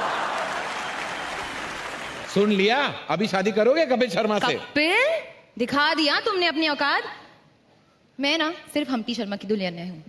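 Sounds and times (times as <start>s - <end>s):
audience applause: 0.0s - 2.8s.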